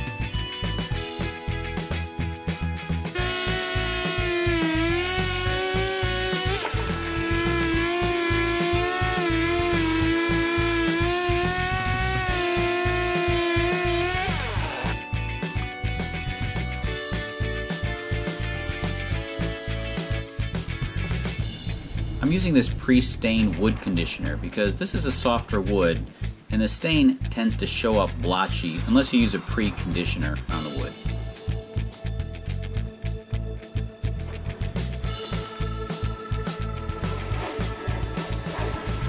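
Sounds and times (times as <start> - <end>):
background music with steady beat: 0.0 - 39.0
electric sander on wood: 3.2 - 15.0.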